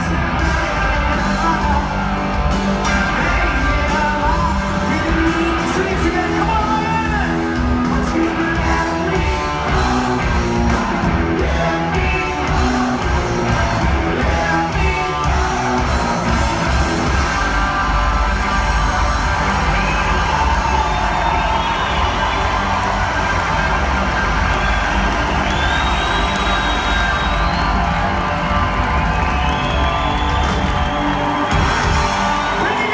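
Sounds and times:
crowd cheering and whooping: 0:00.0 - 0:32.9
live rock band playing: 0:00.0 - 0:32.9.

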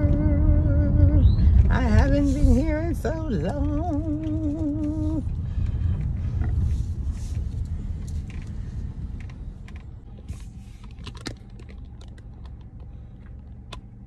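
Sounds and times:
low rumble inside car: 0:00.0 - 0:14.0.

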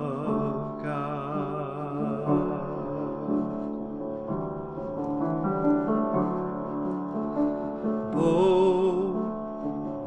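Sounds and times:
grand piano chords: 0:00.0 - 0:10.0.

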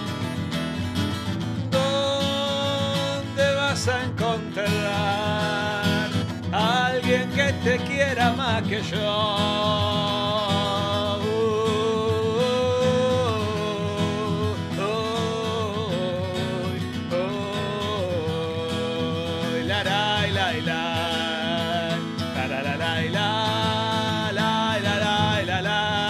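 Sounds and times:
acoustic guitar: 0:00.0 - 0:26.0.

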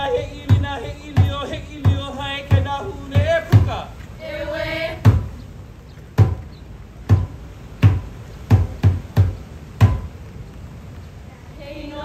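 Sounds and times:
gourd drum strikes: 0:00.0 - 0:03.9, 0:05.0 - 0:05.4, 0:06.1 - 0:10.3.

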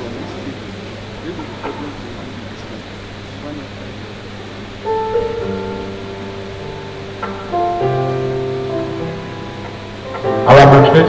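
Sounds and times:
keyboard playing slow chords: 0:00.0 - 0:11.0
low steady hum: 0:00.0 - 0:11.0.

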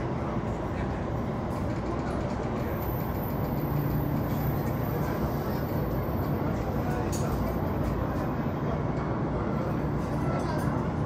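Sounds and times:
train rumbling inside carriage: 0:00.0 - 0:11.0.

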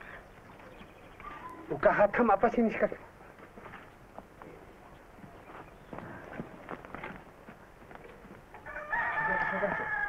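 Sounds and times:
rooster crowing: 0:08.6 - 0:10.0.

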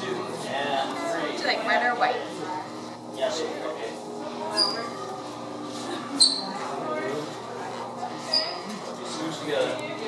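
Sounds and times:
people chattering: 0:00.0 - 0:10.0
sharp high-pitched squeaks: 0:04.5 - 0:05.0, 0:06.2 - 0:06.5, 0:08.2 - 0:08.6.

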